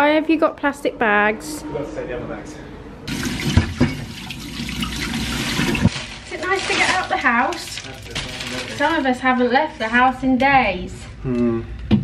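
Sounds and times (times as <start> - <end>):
kitchen tap running: 3.1 - 7.0.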